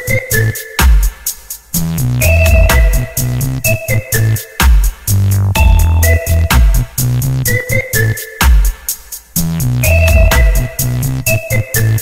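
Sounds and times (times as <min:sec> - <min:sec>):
electronic music with heavy beat: 0:00.0 - 0:12.0.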